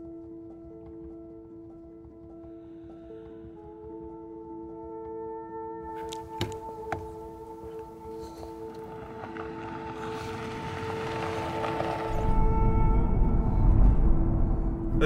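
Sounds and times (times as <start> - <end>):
music with sustained tones: 0.0 - 15.0
car driving heard from inside: 8.2 - 12.5.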